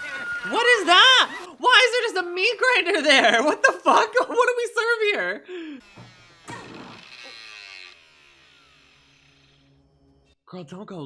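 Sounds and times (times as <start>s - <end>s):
door creaking open: 5.8s - 8.0s.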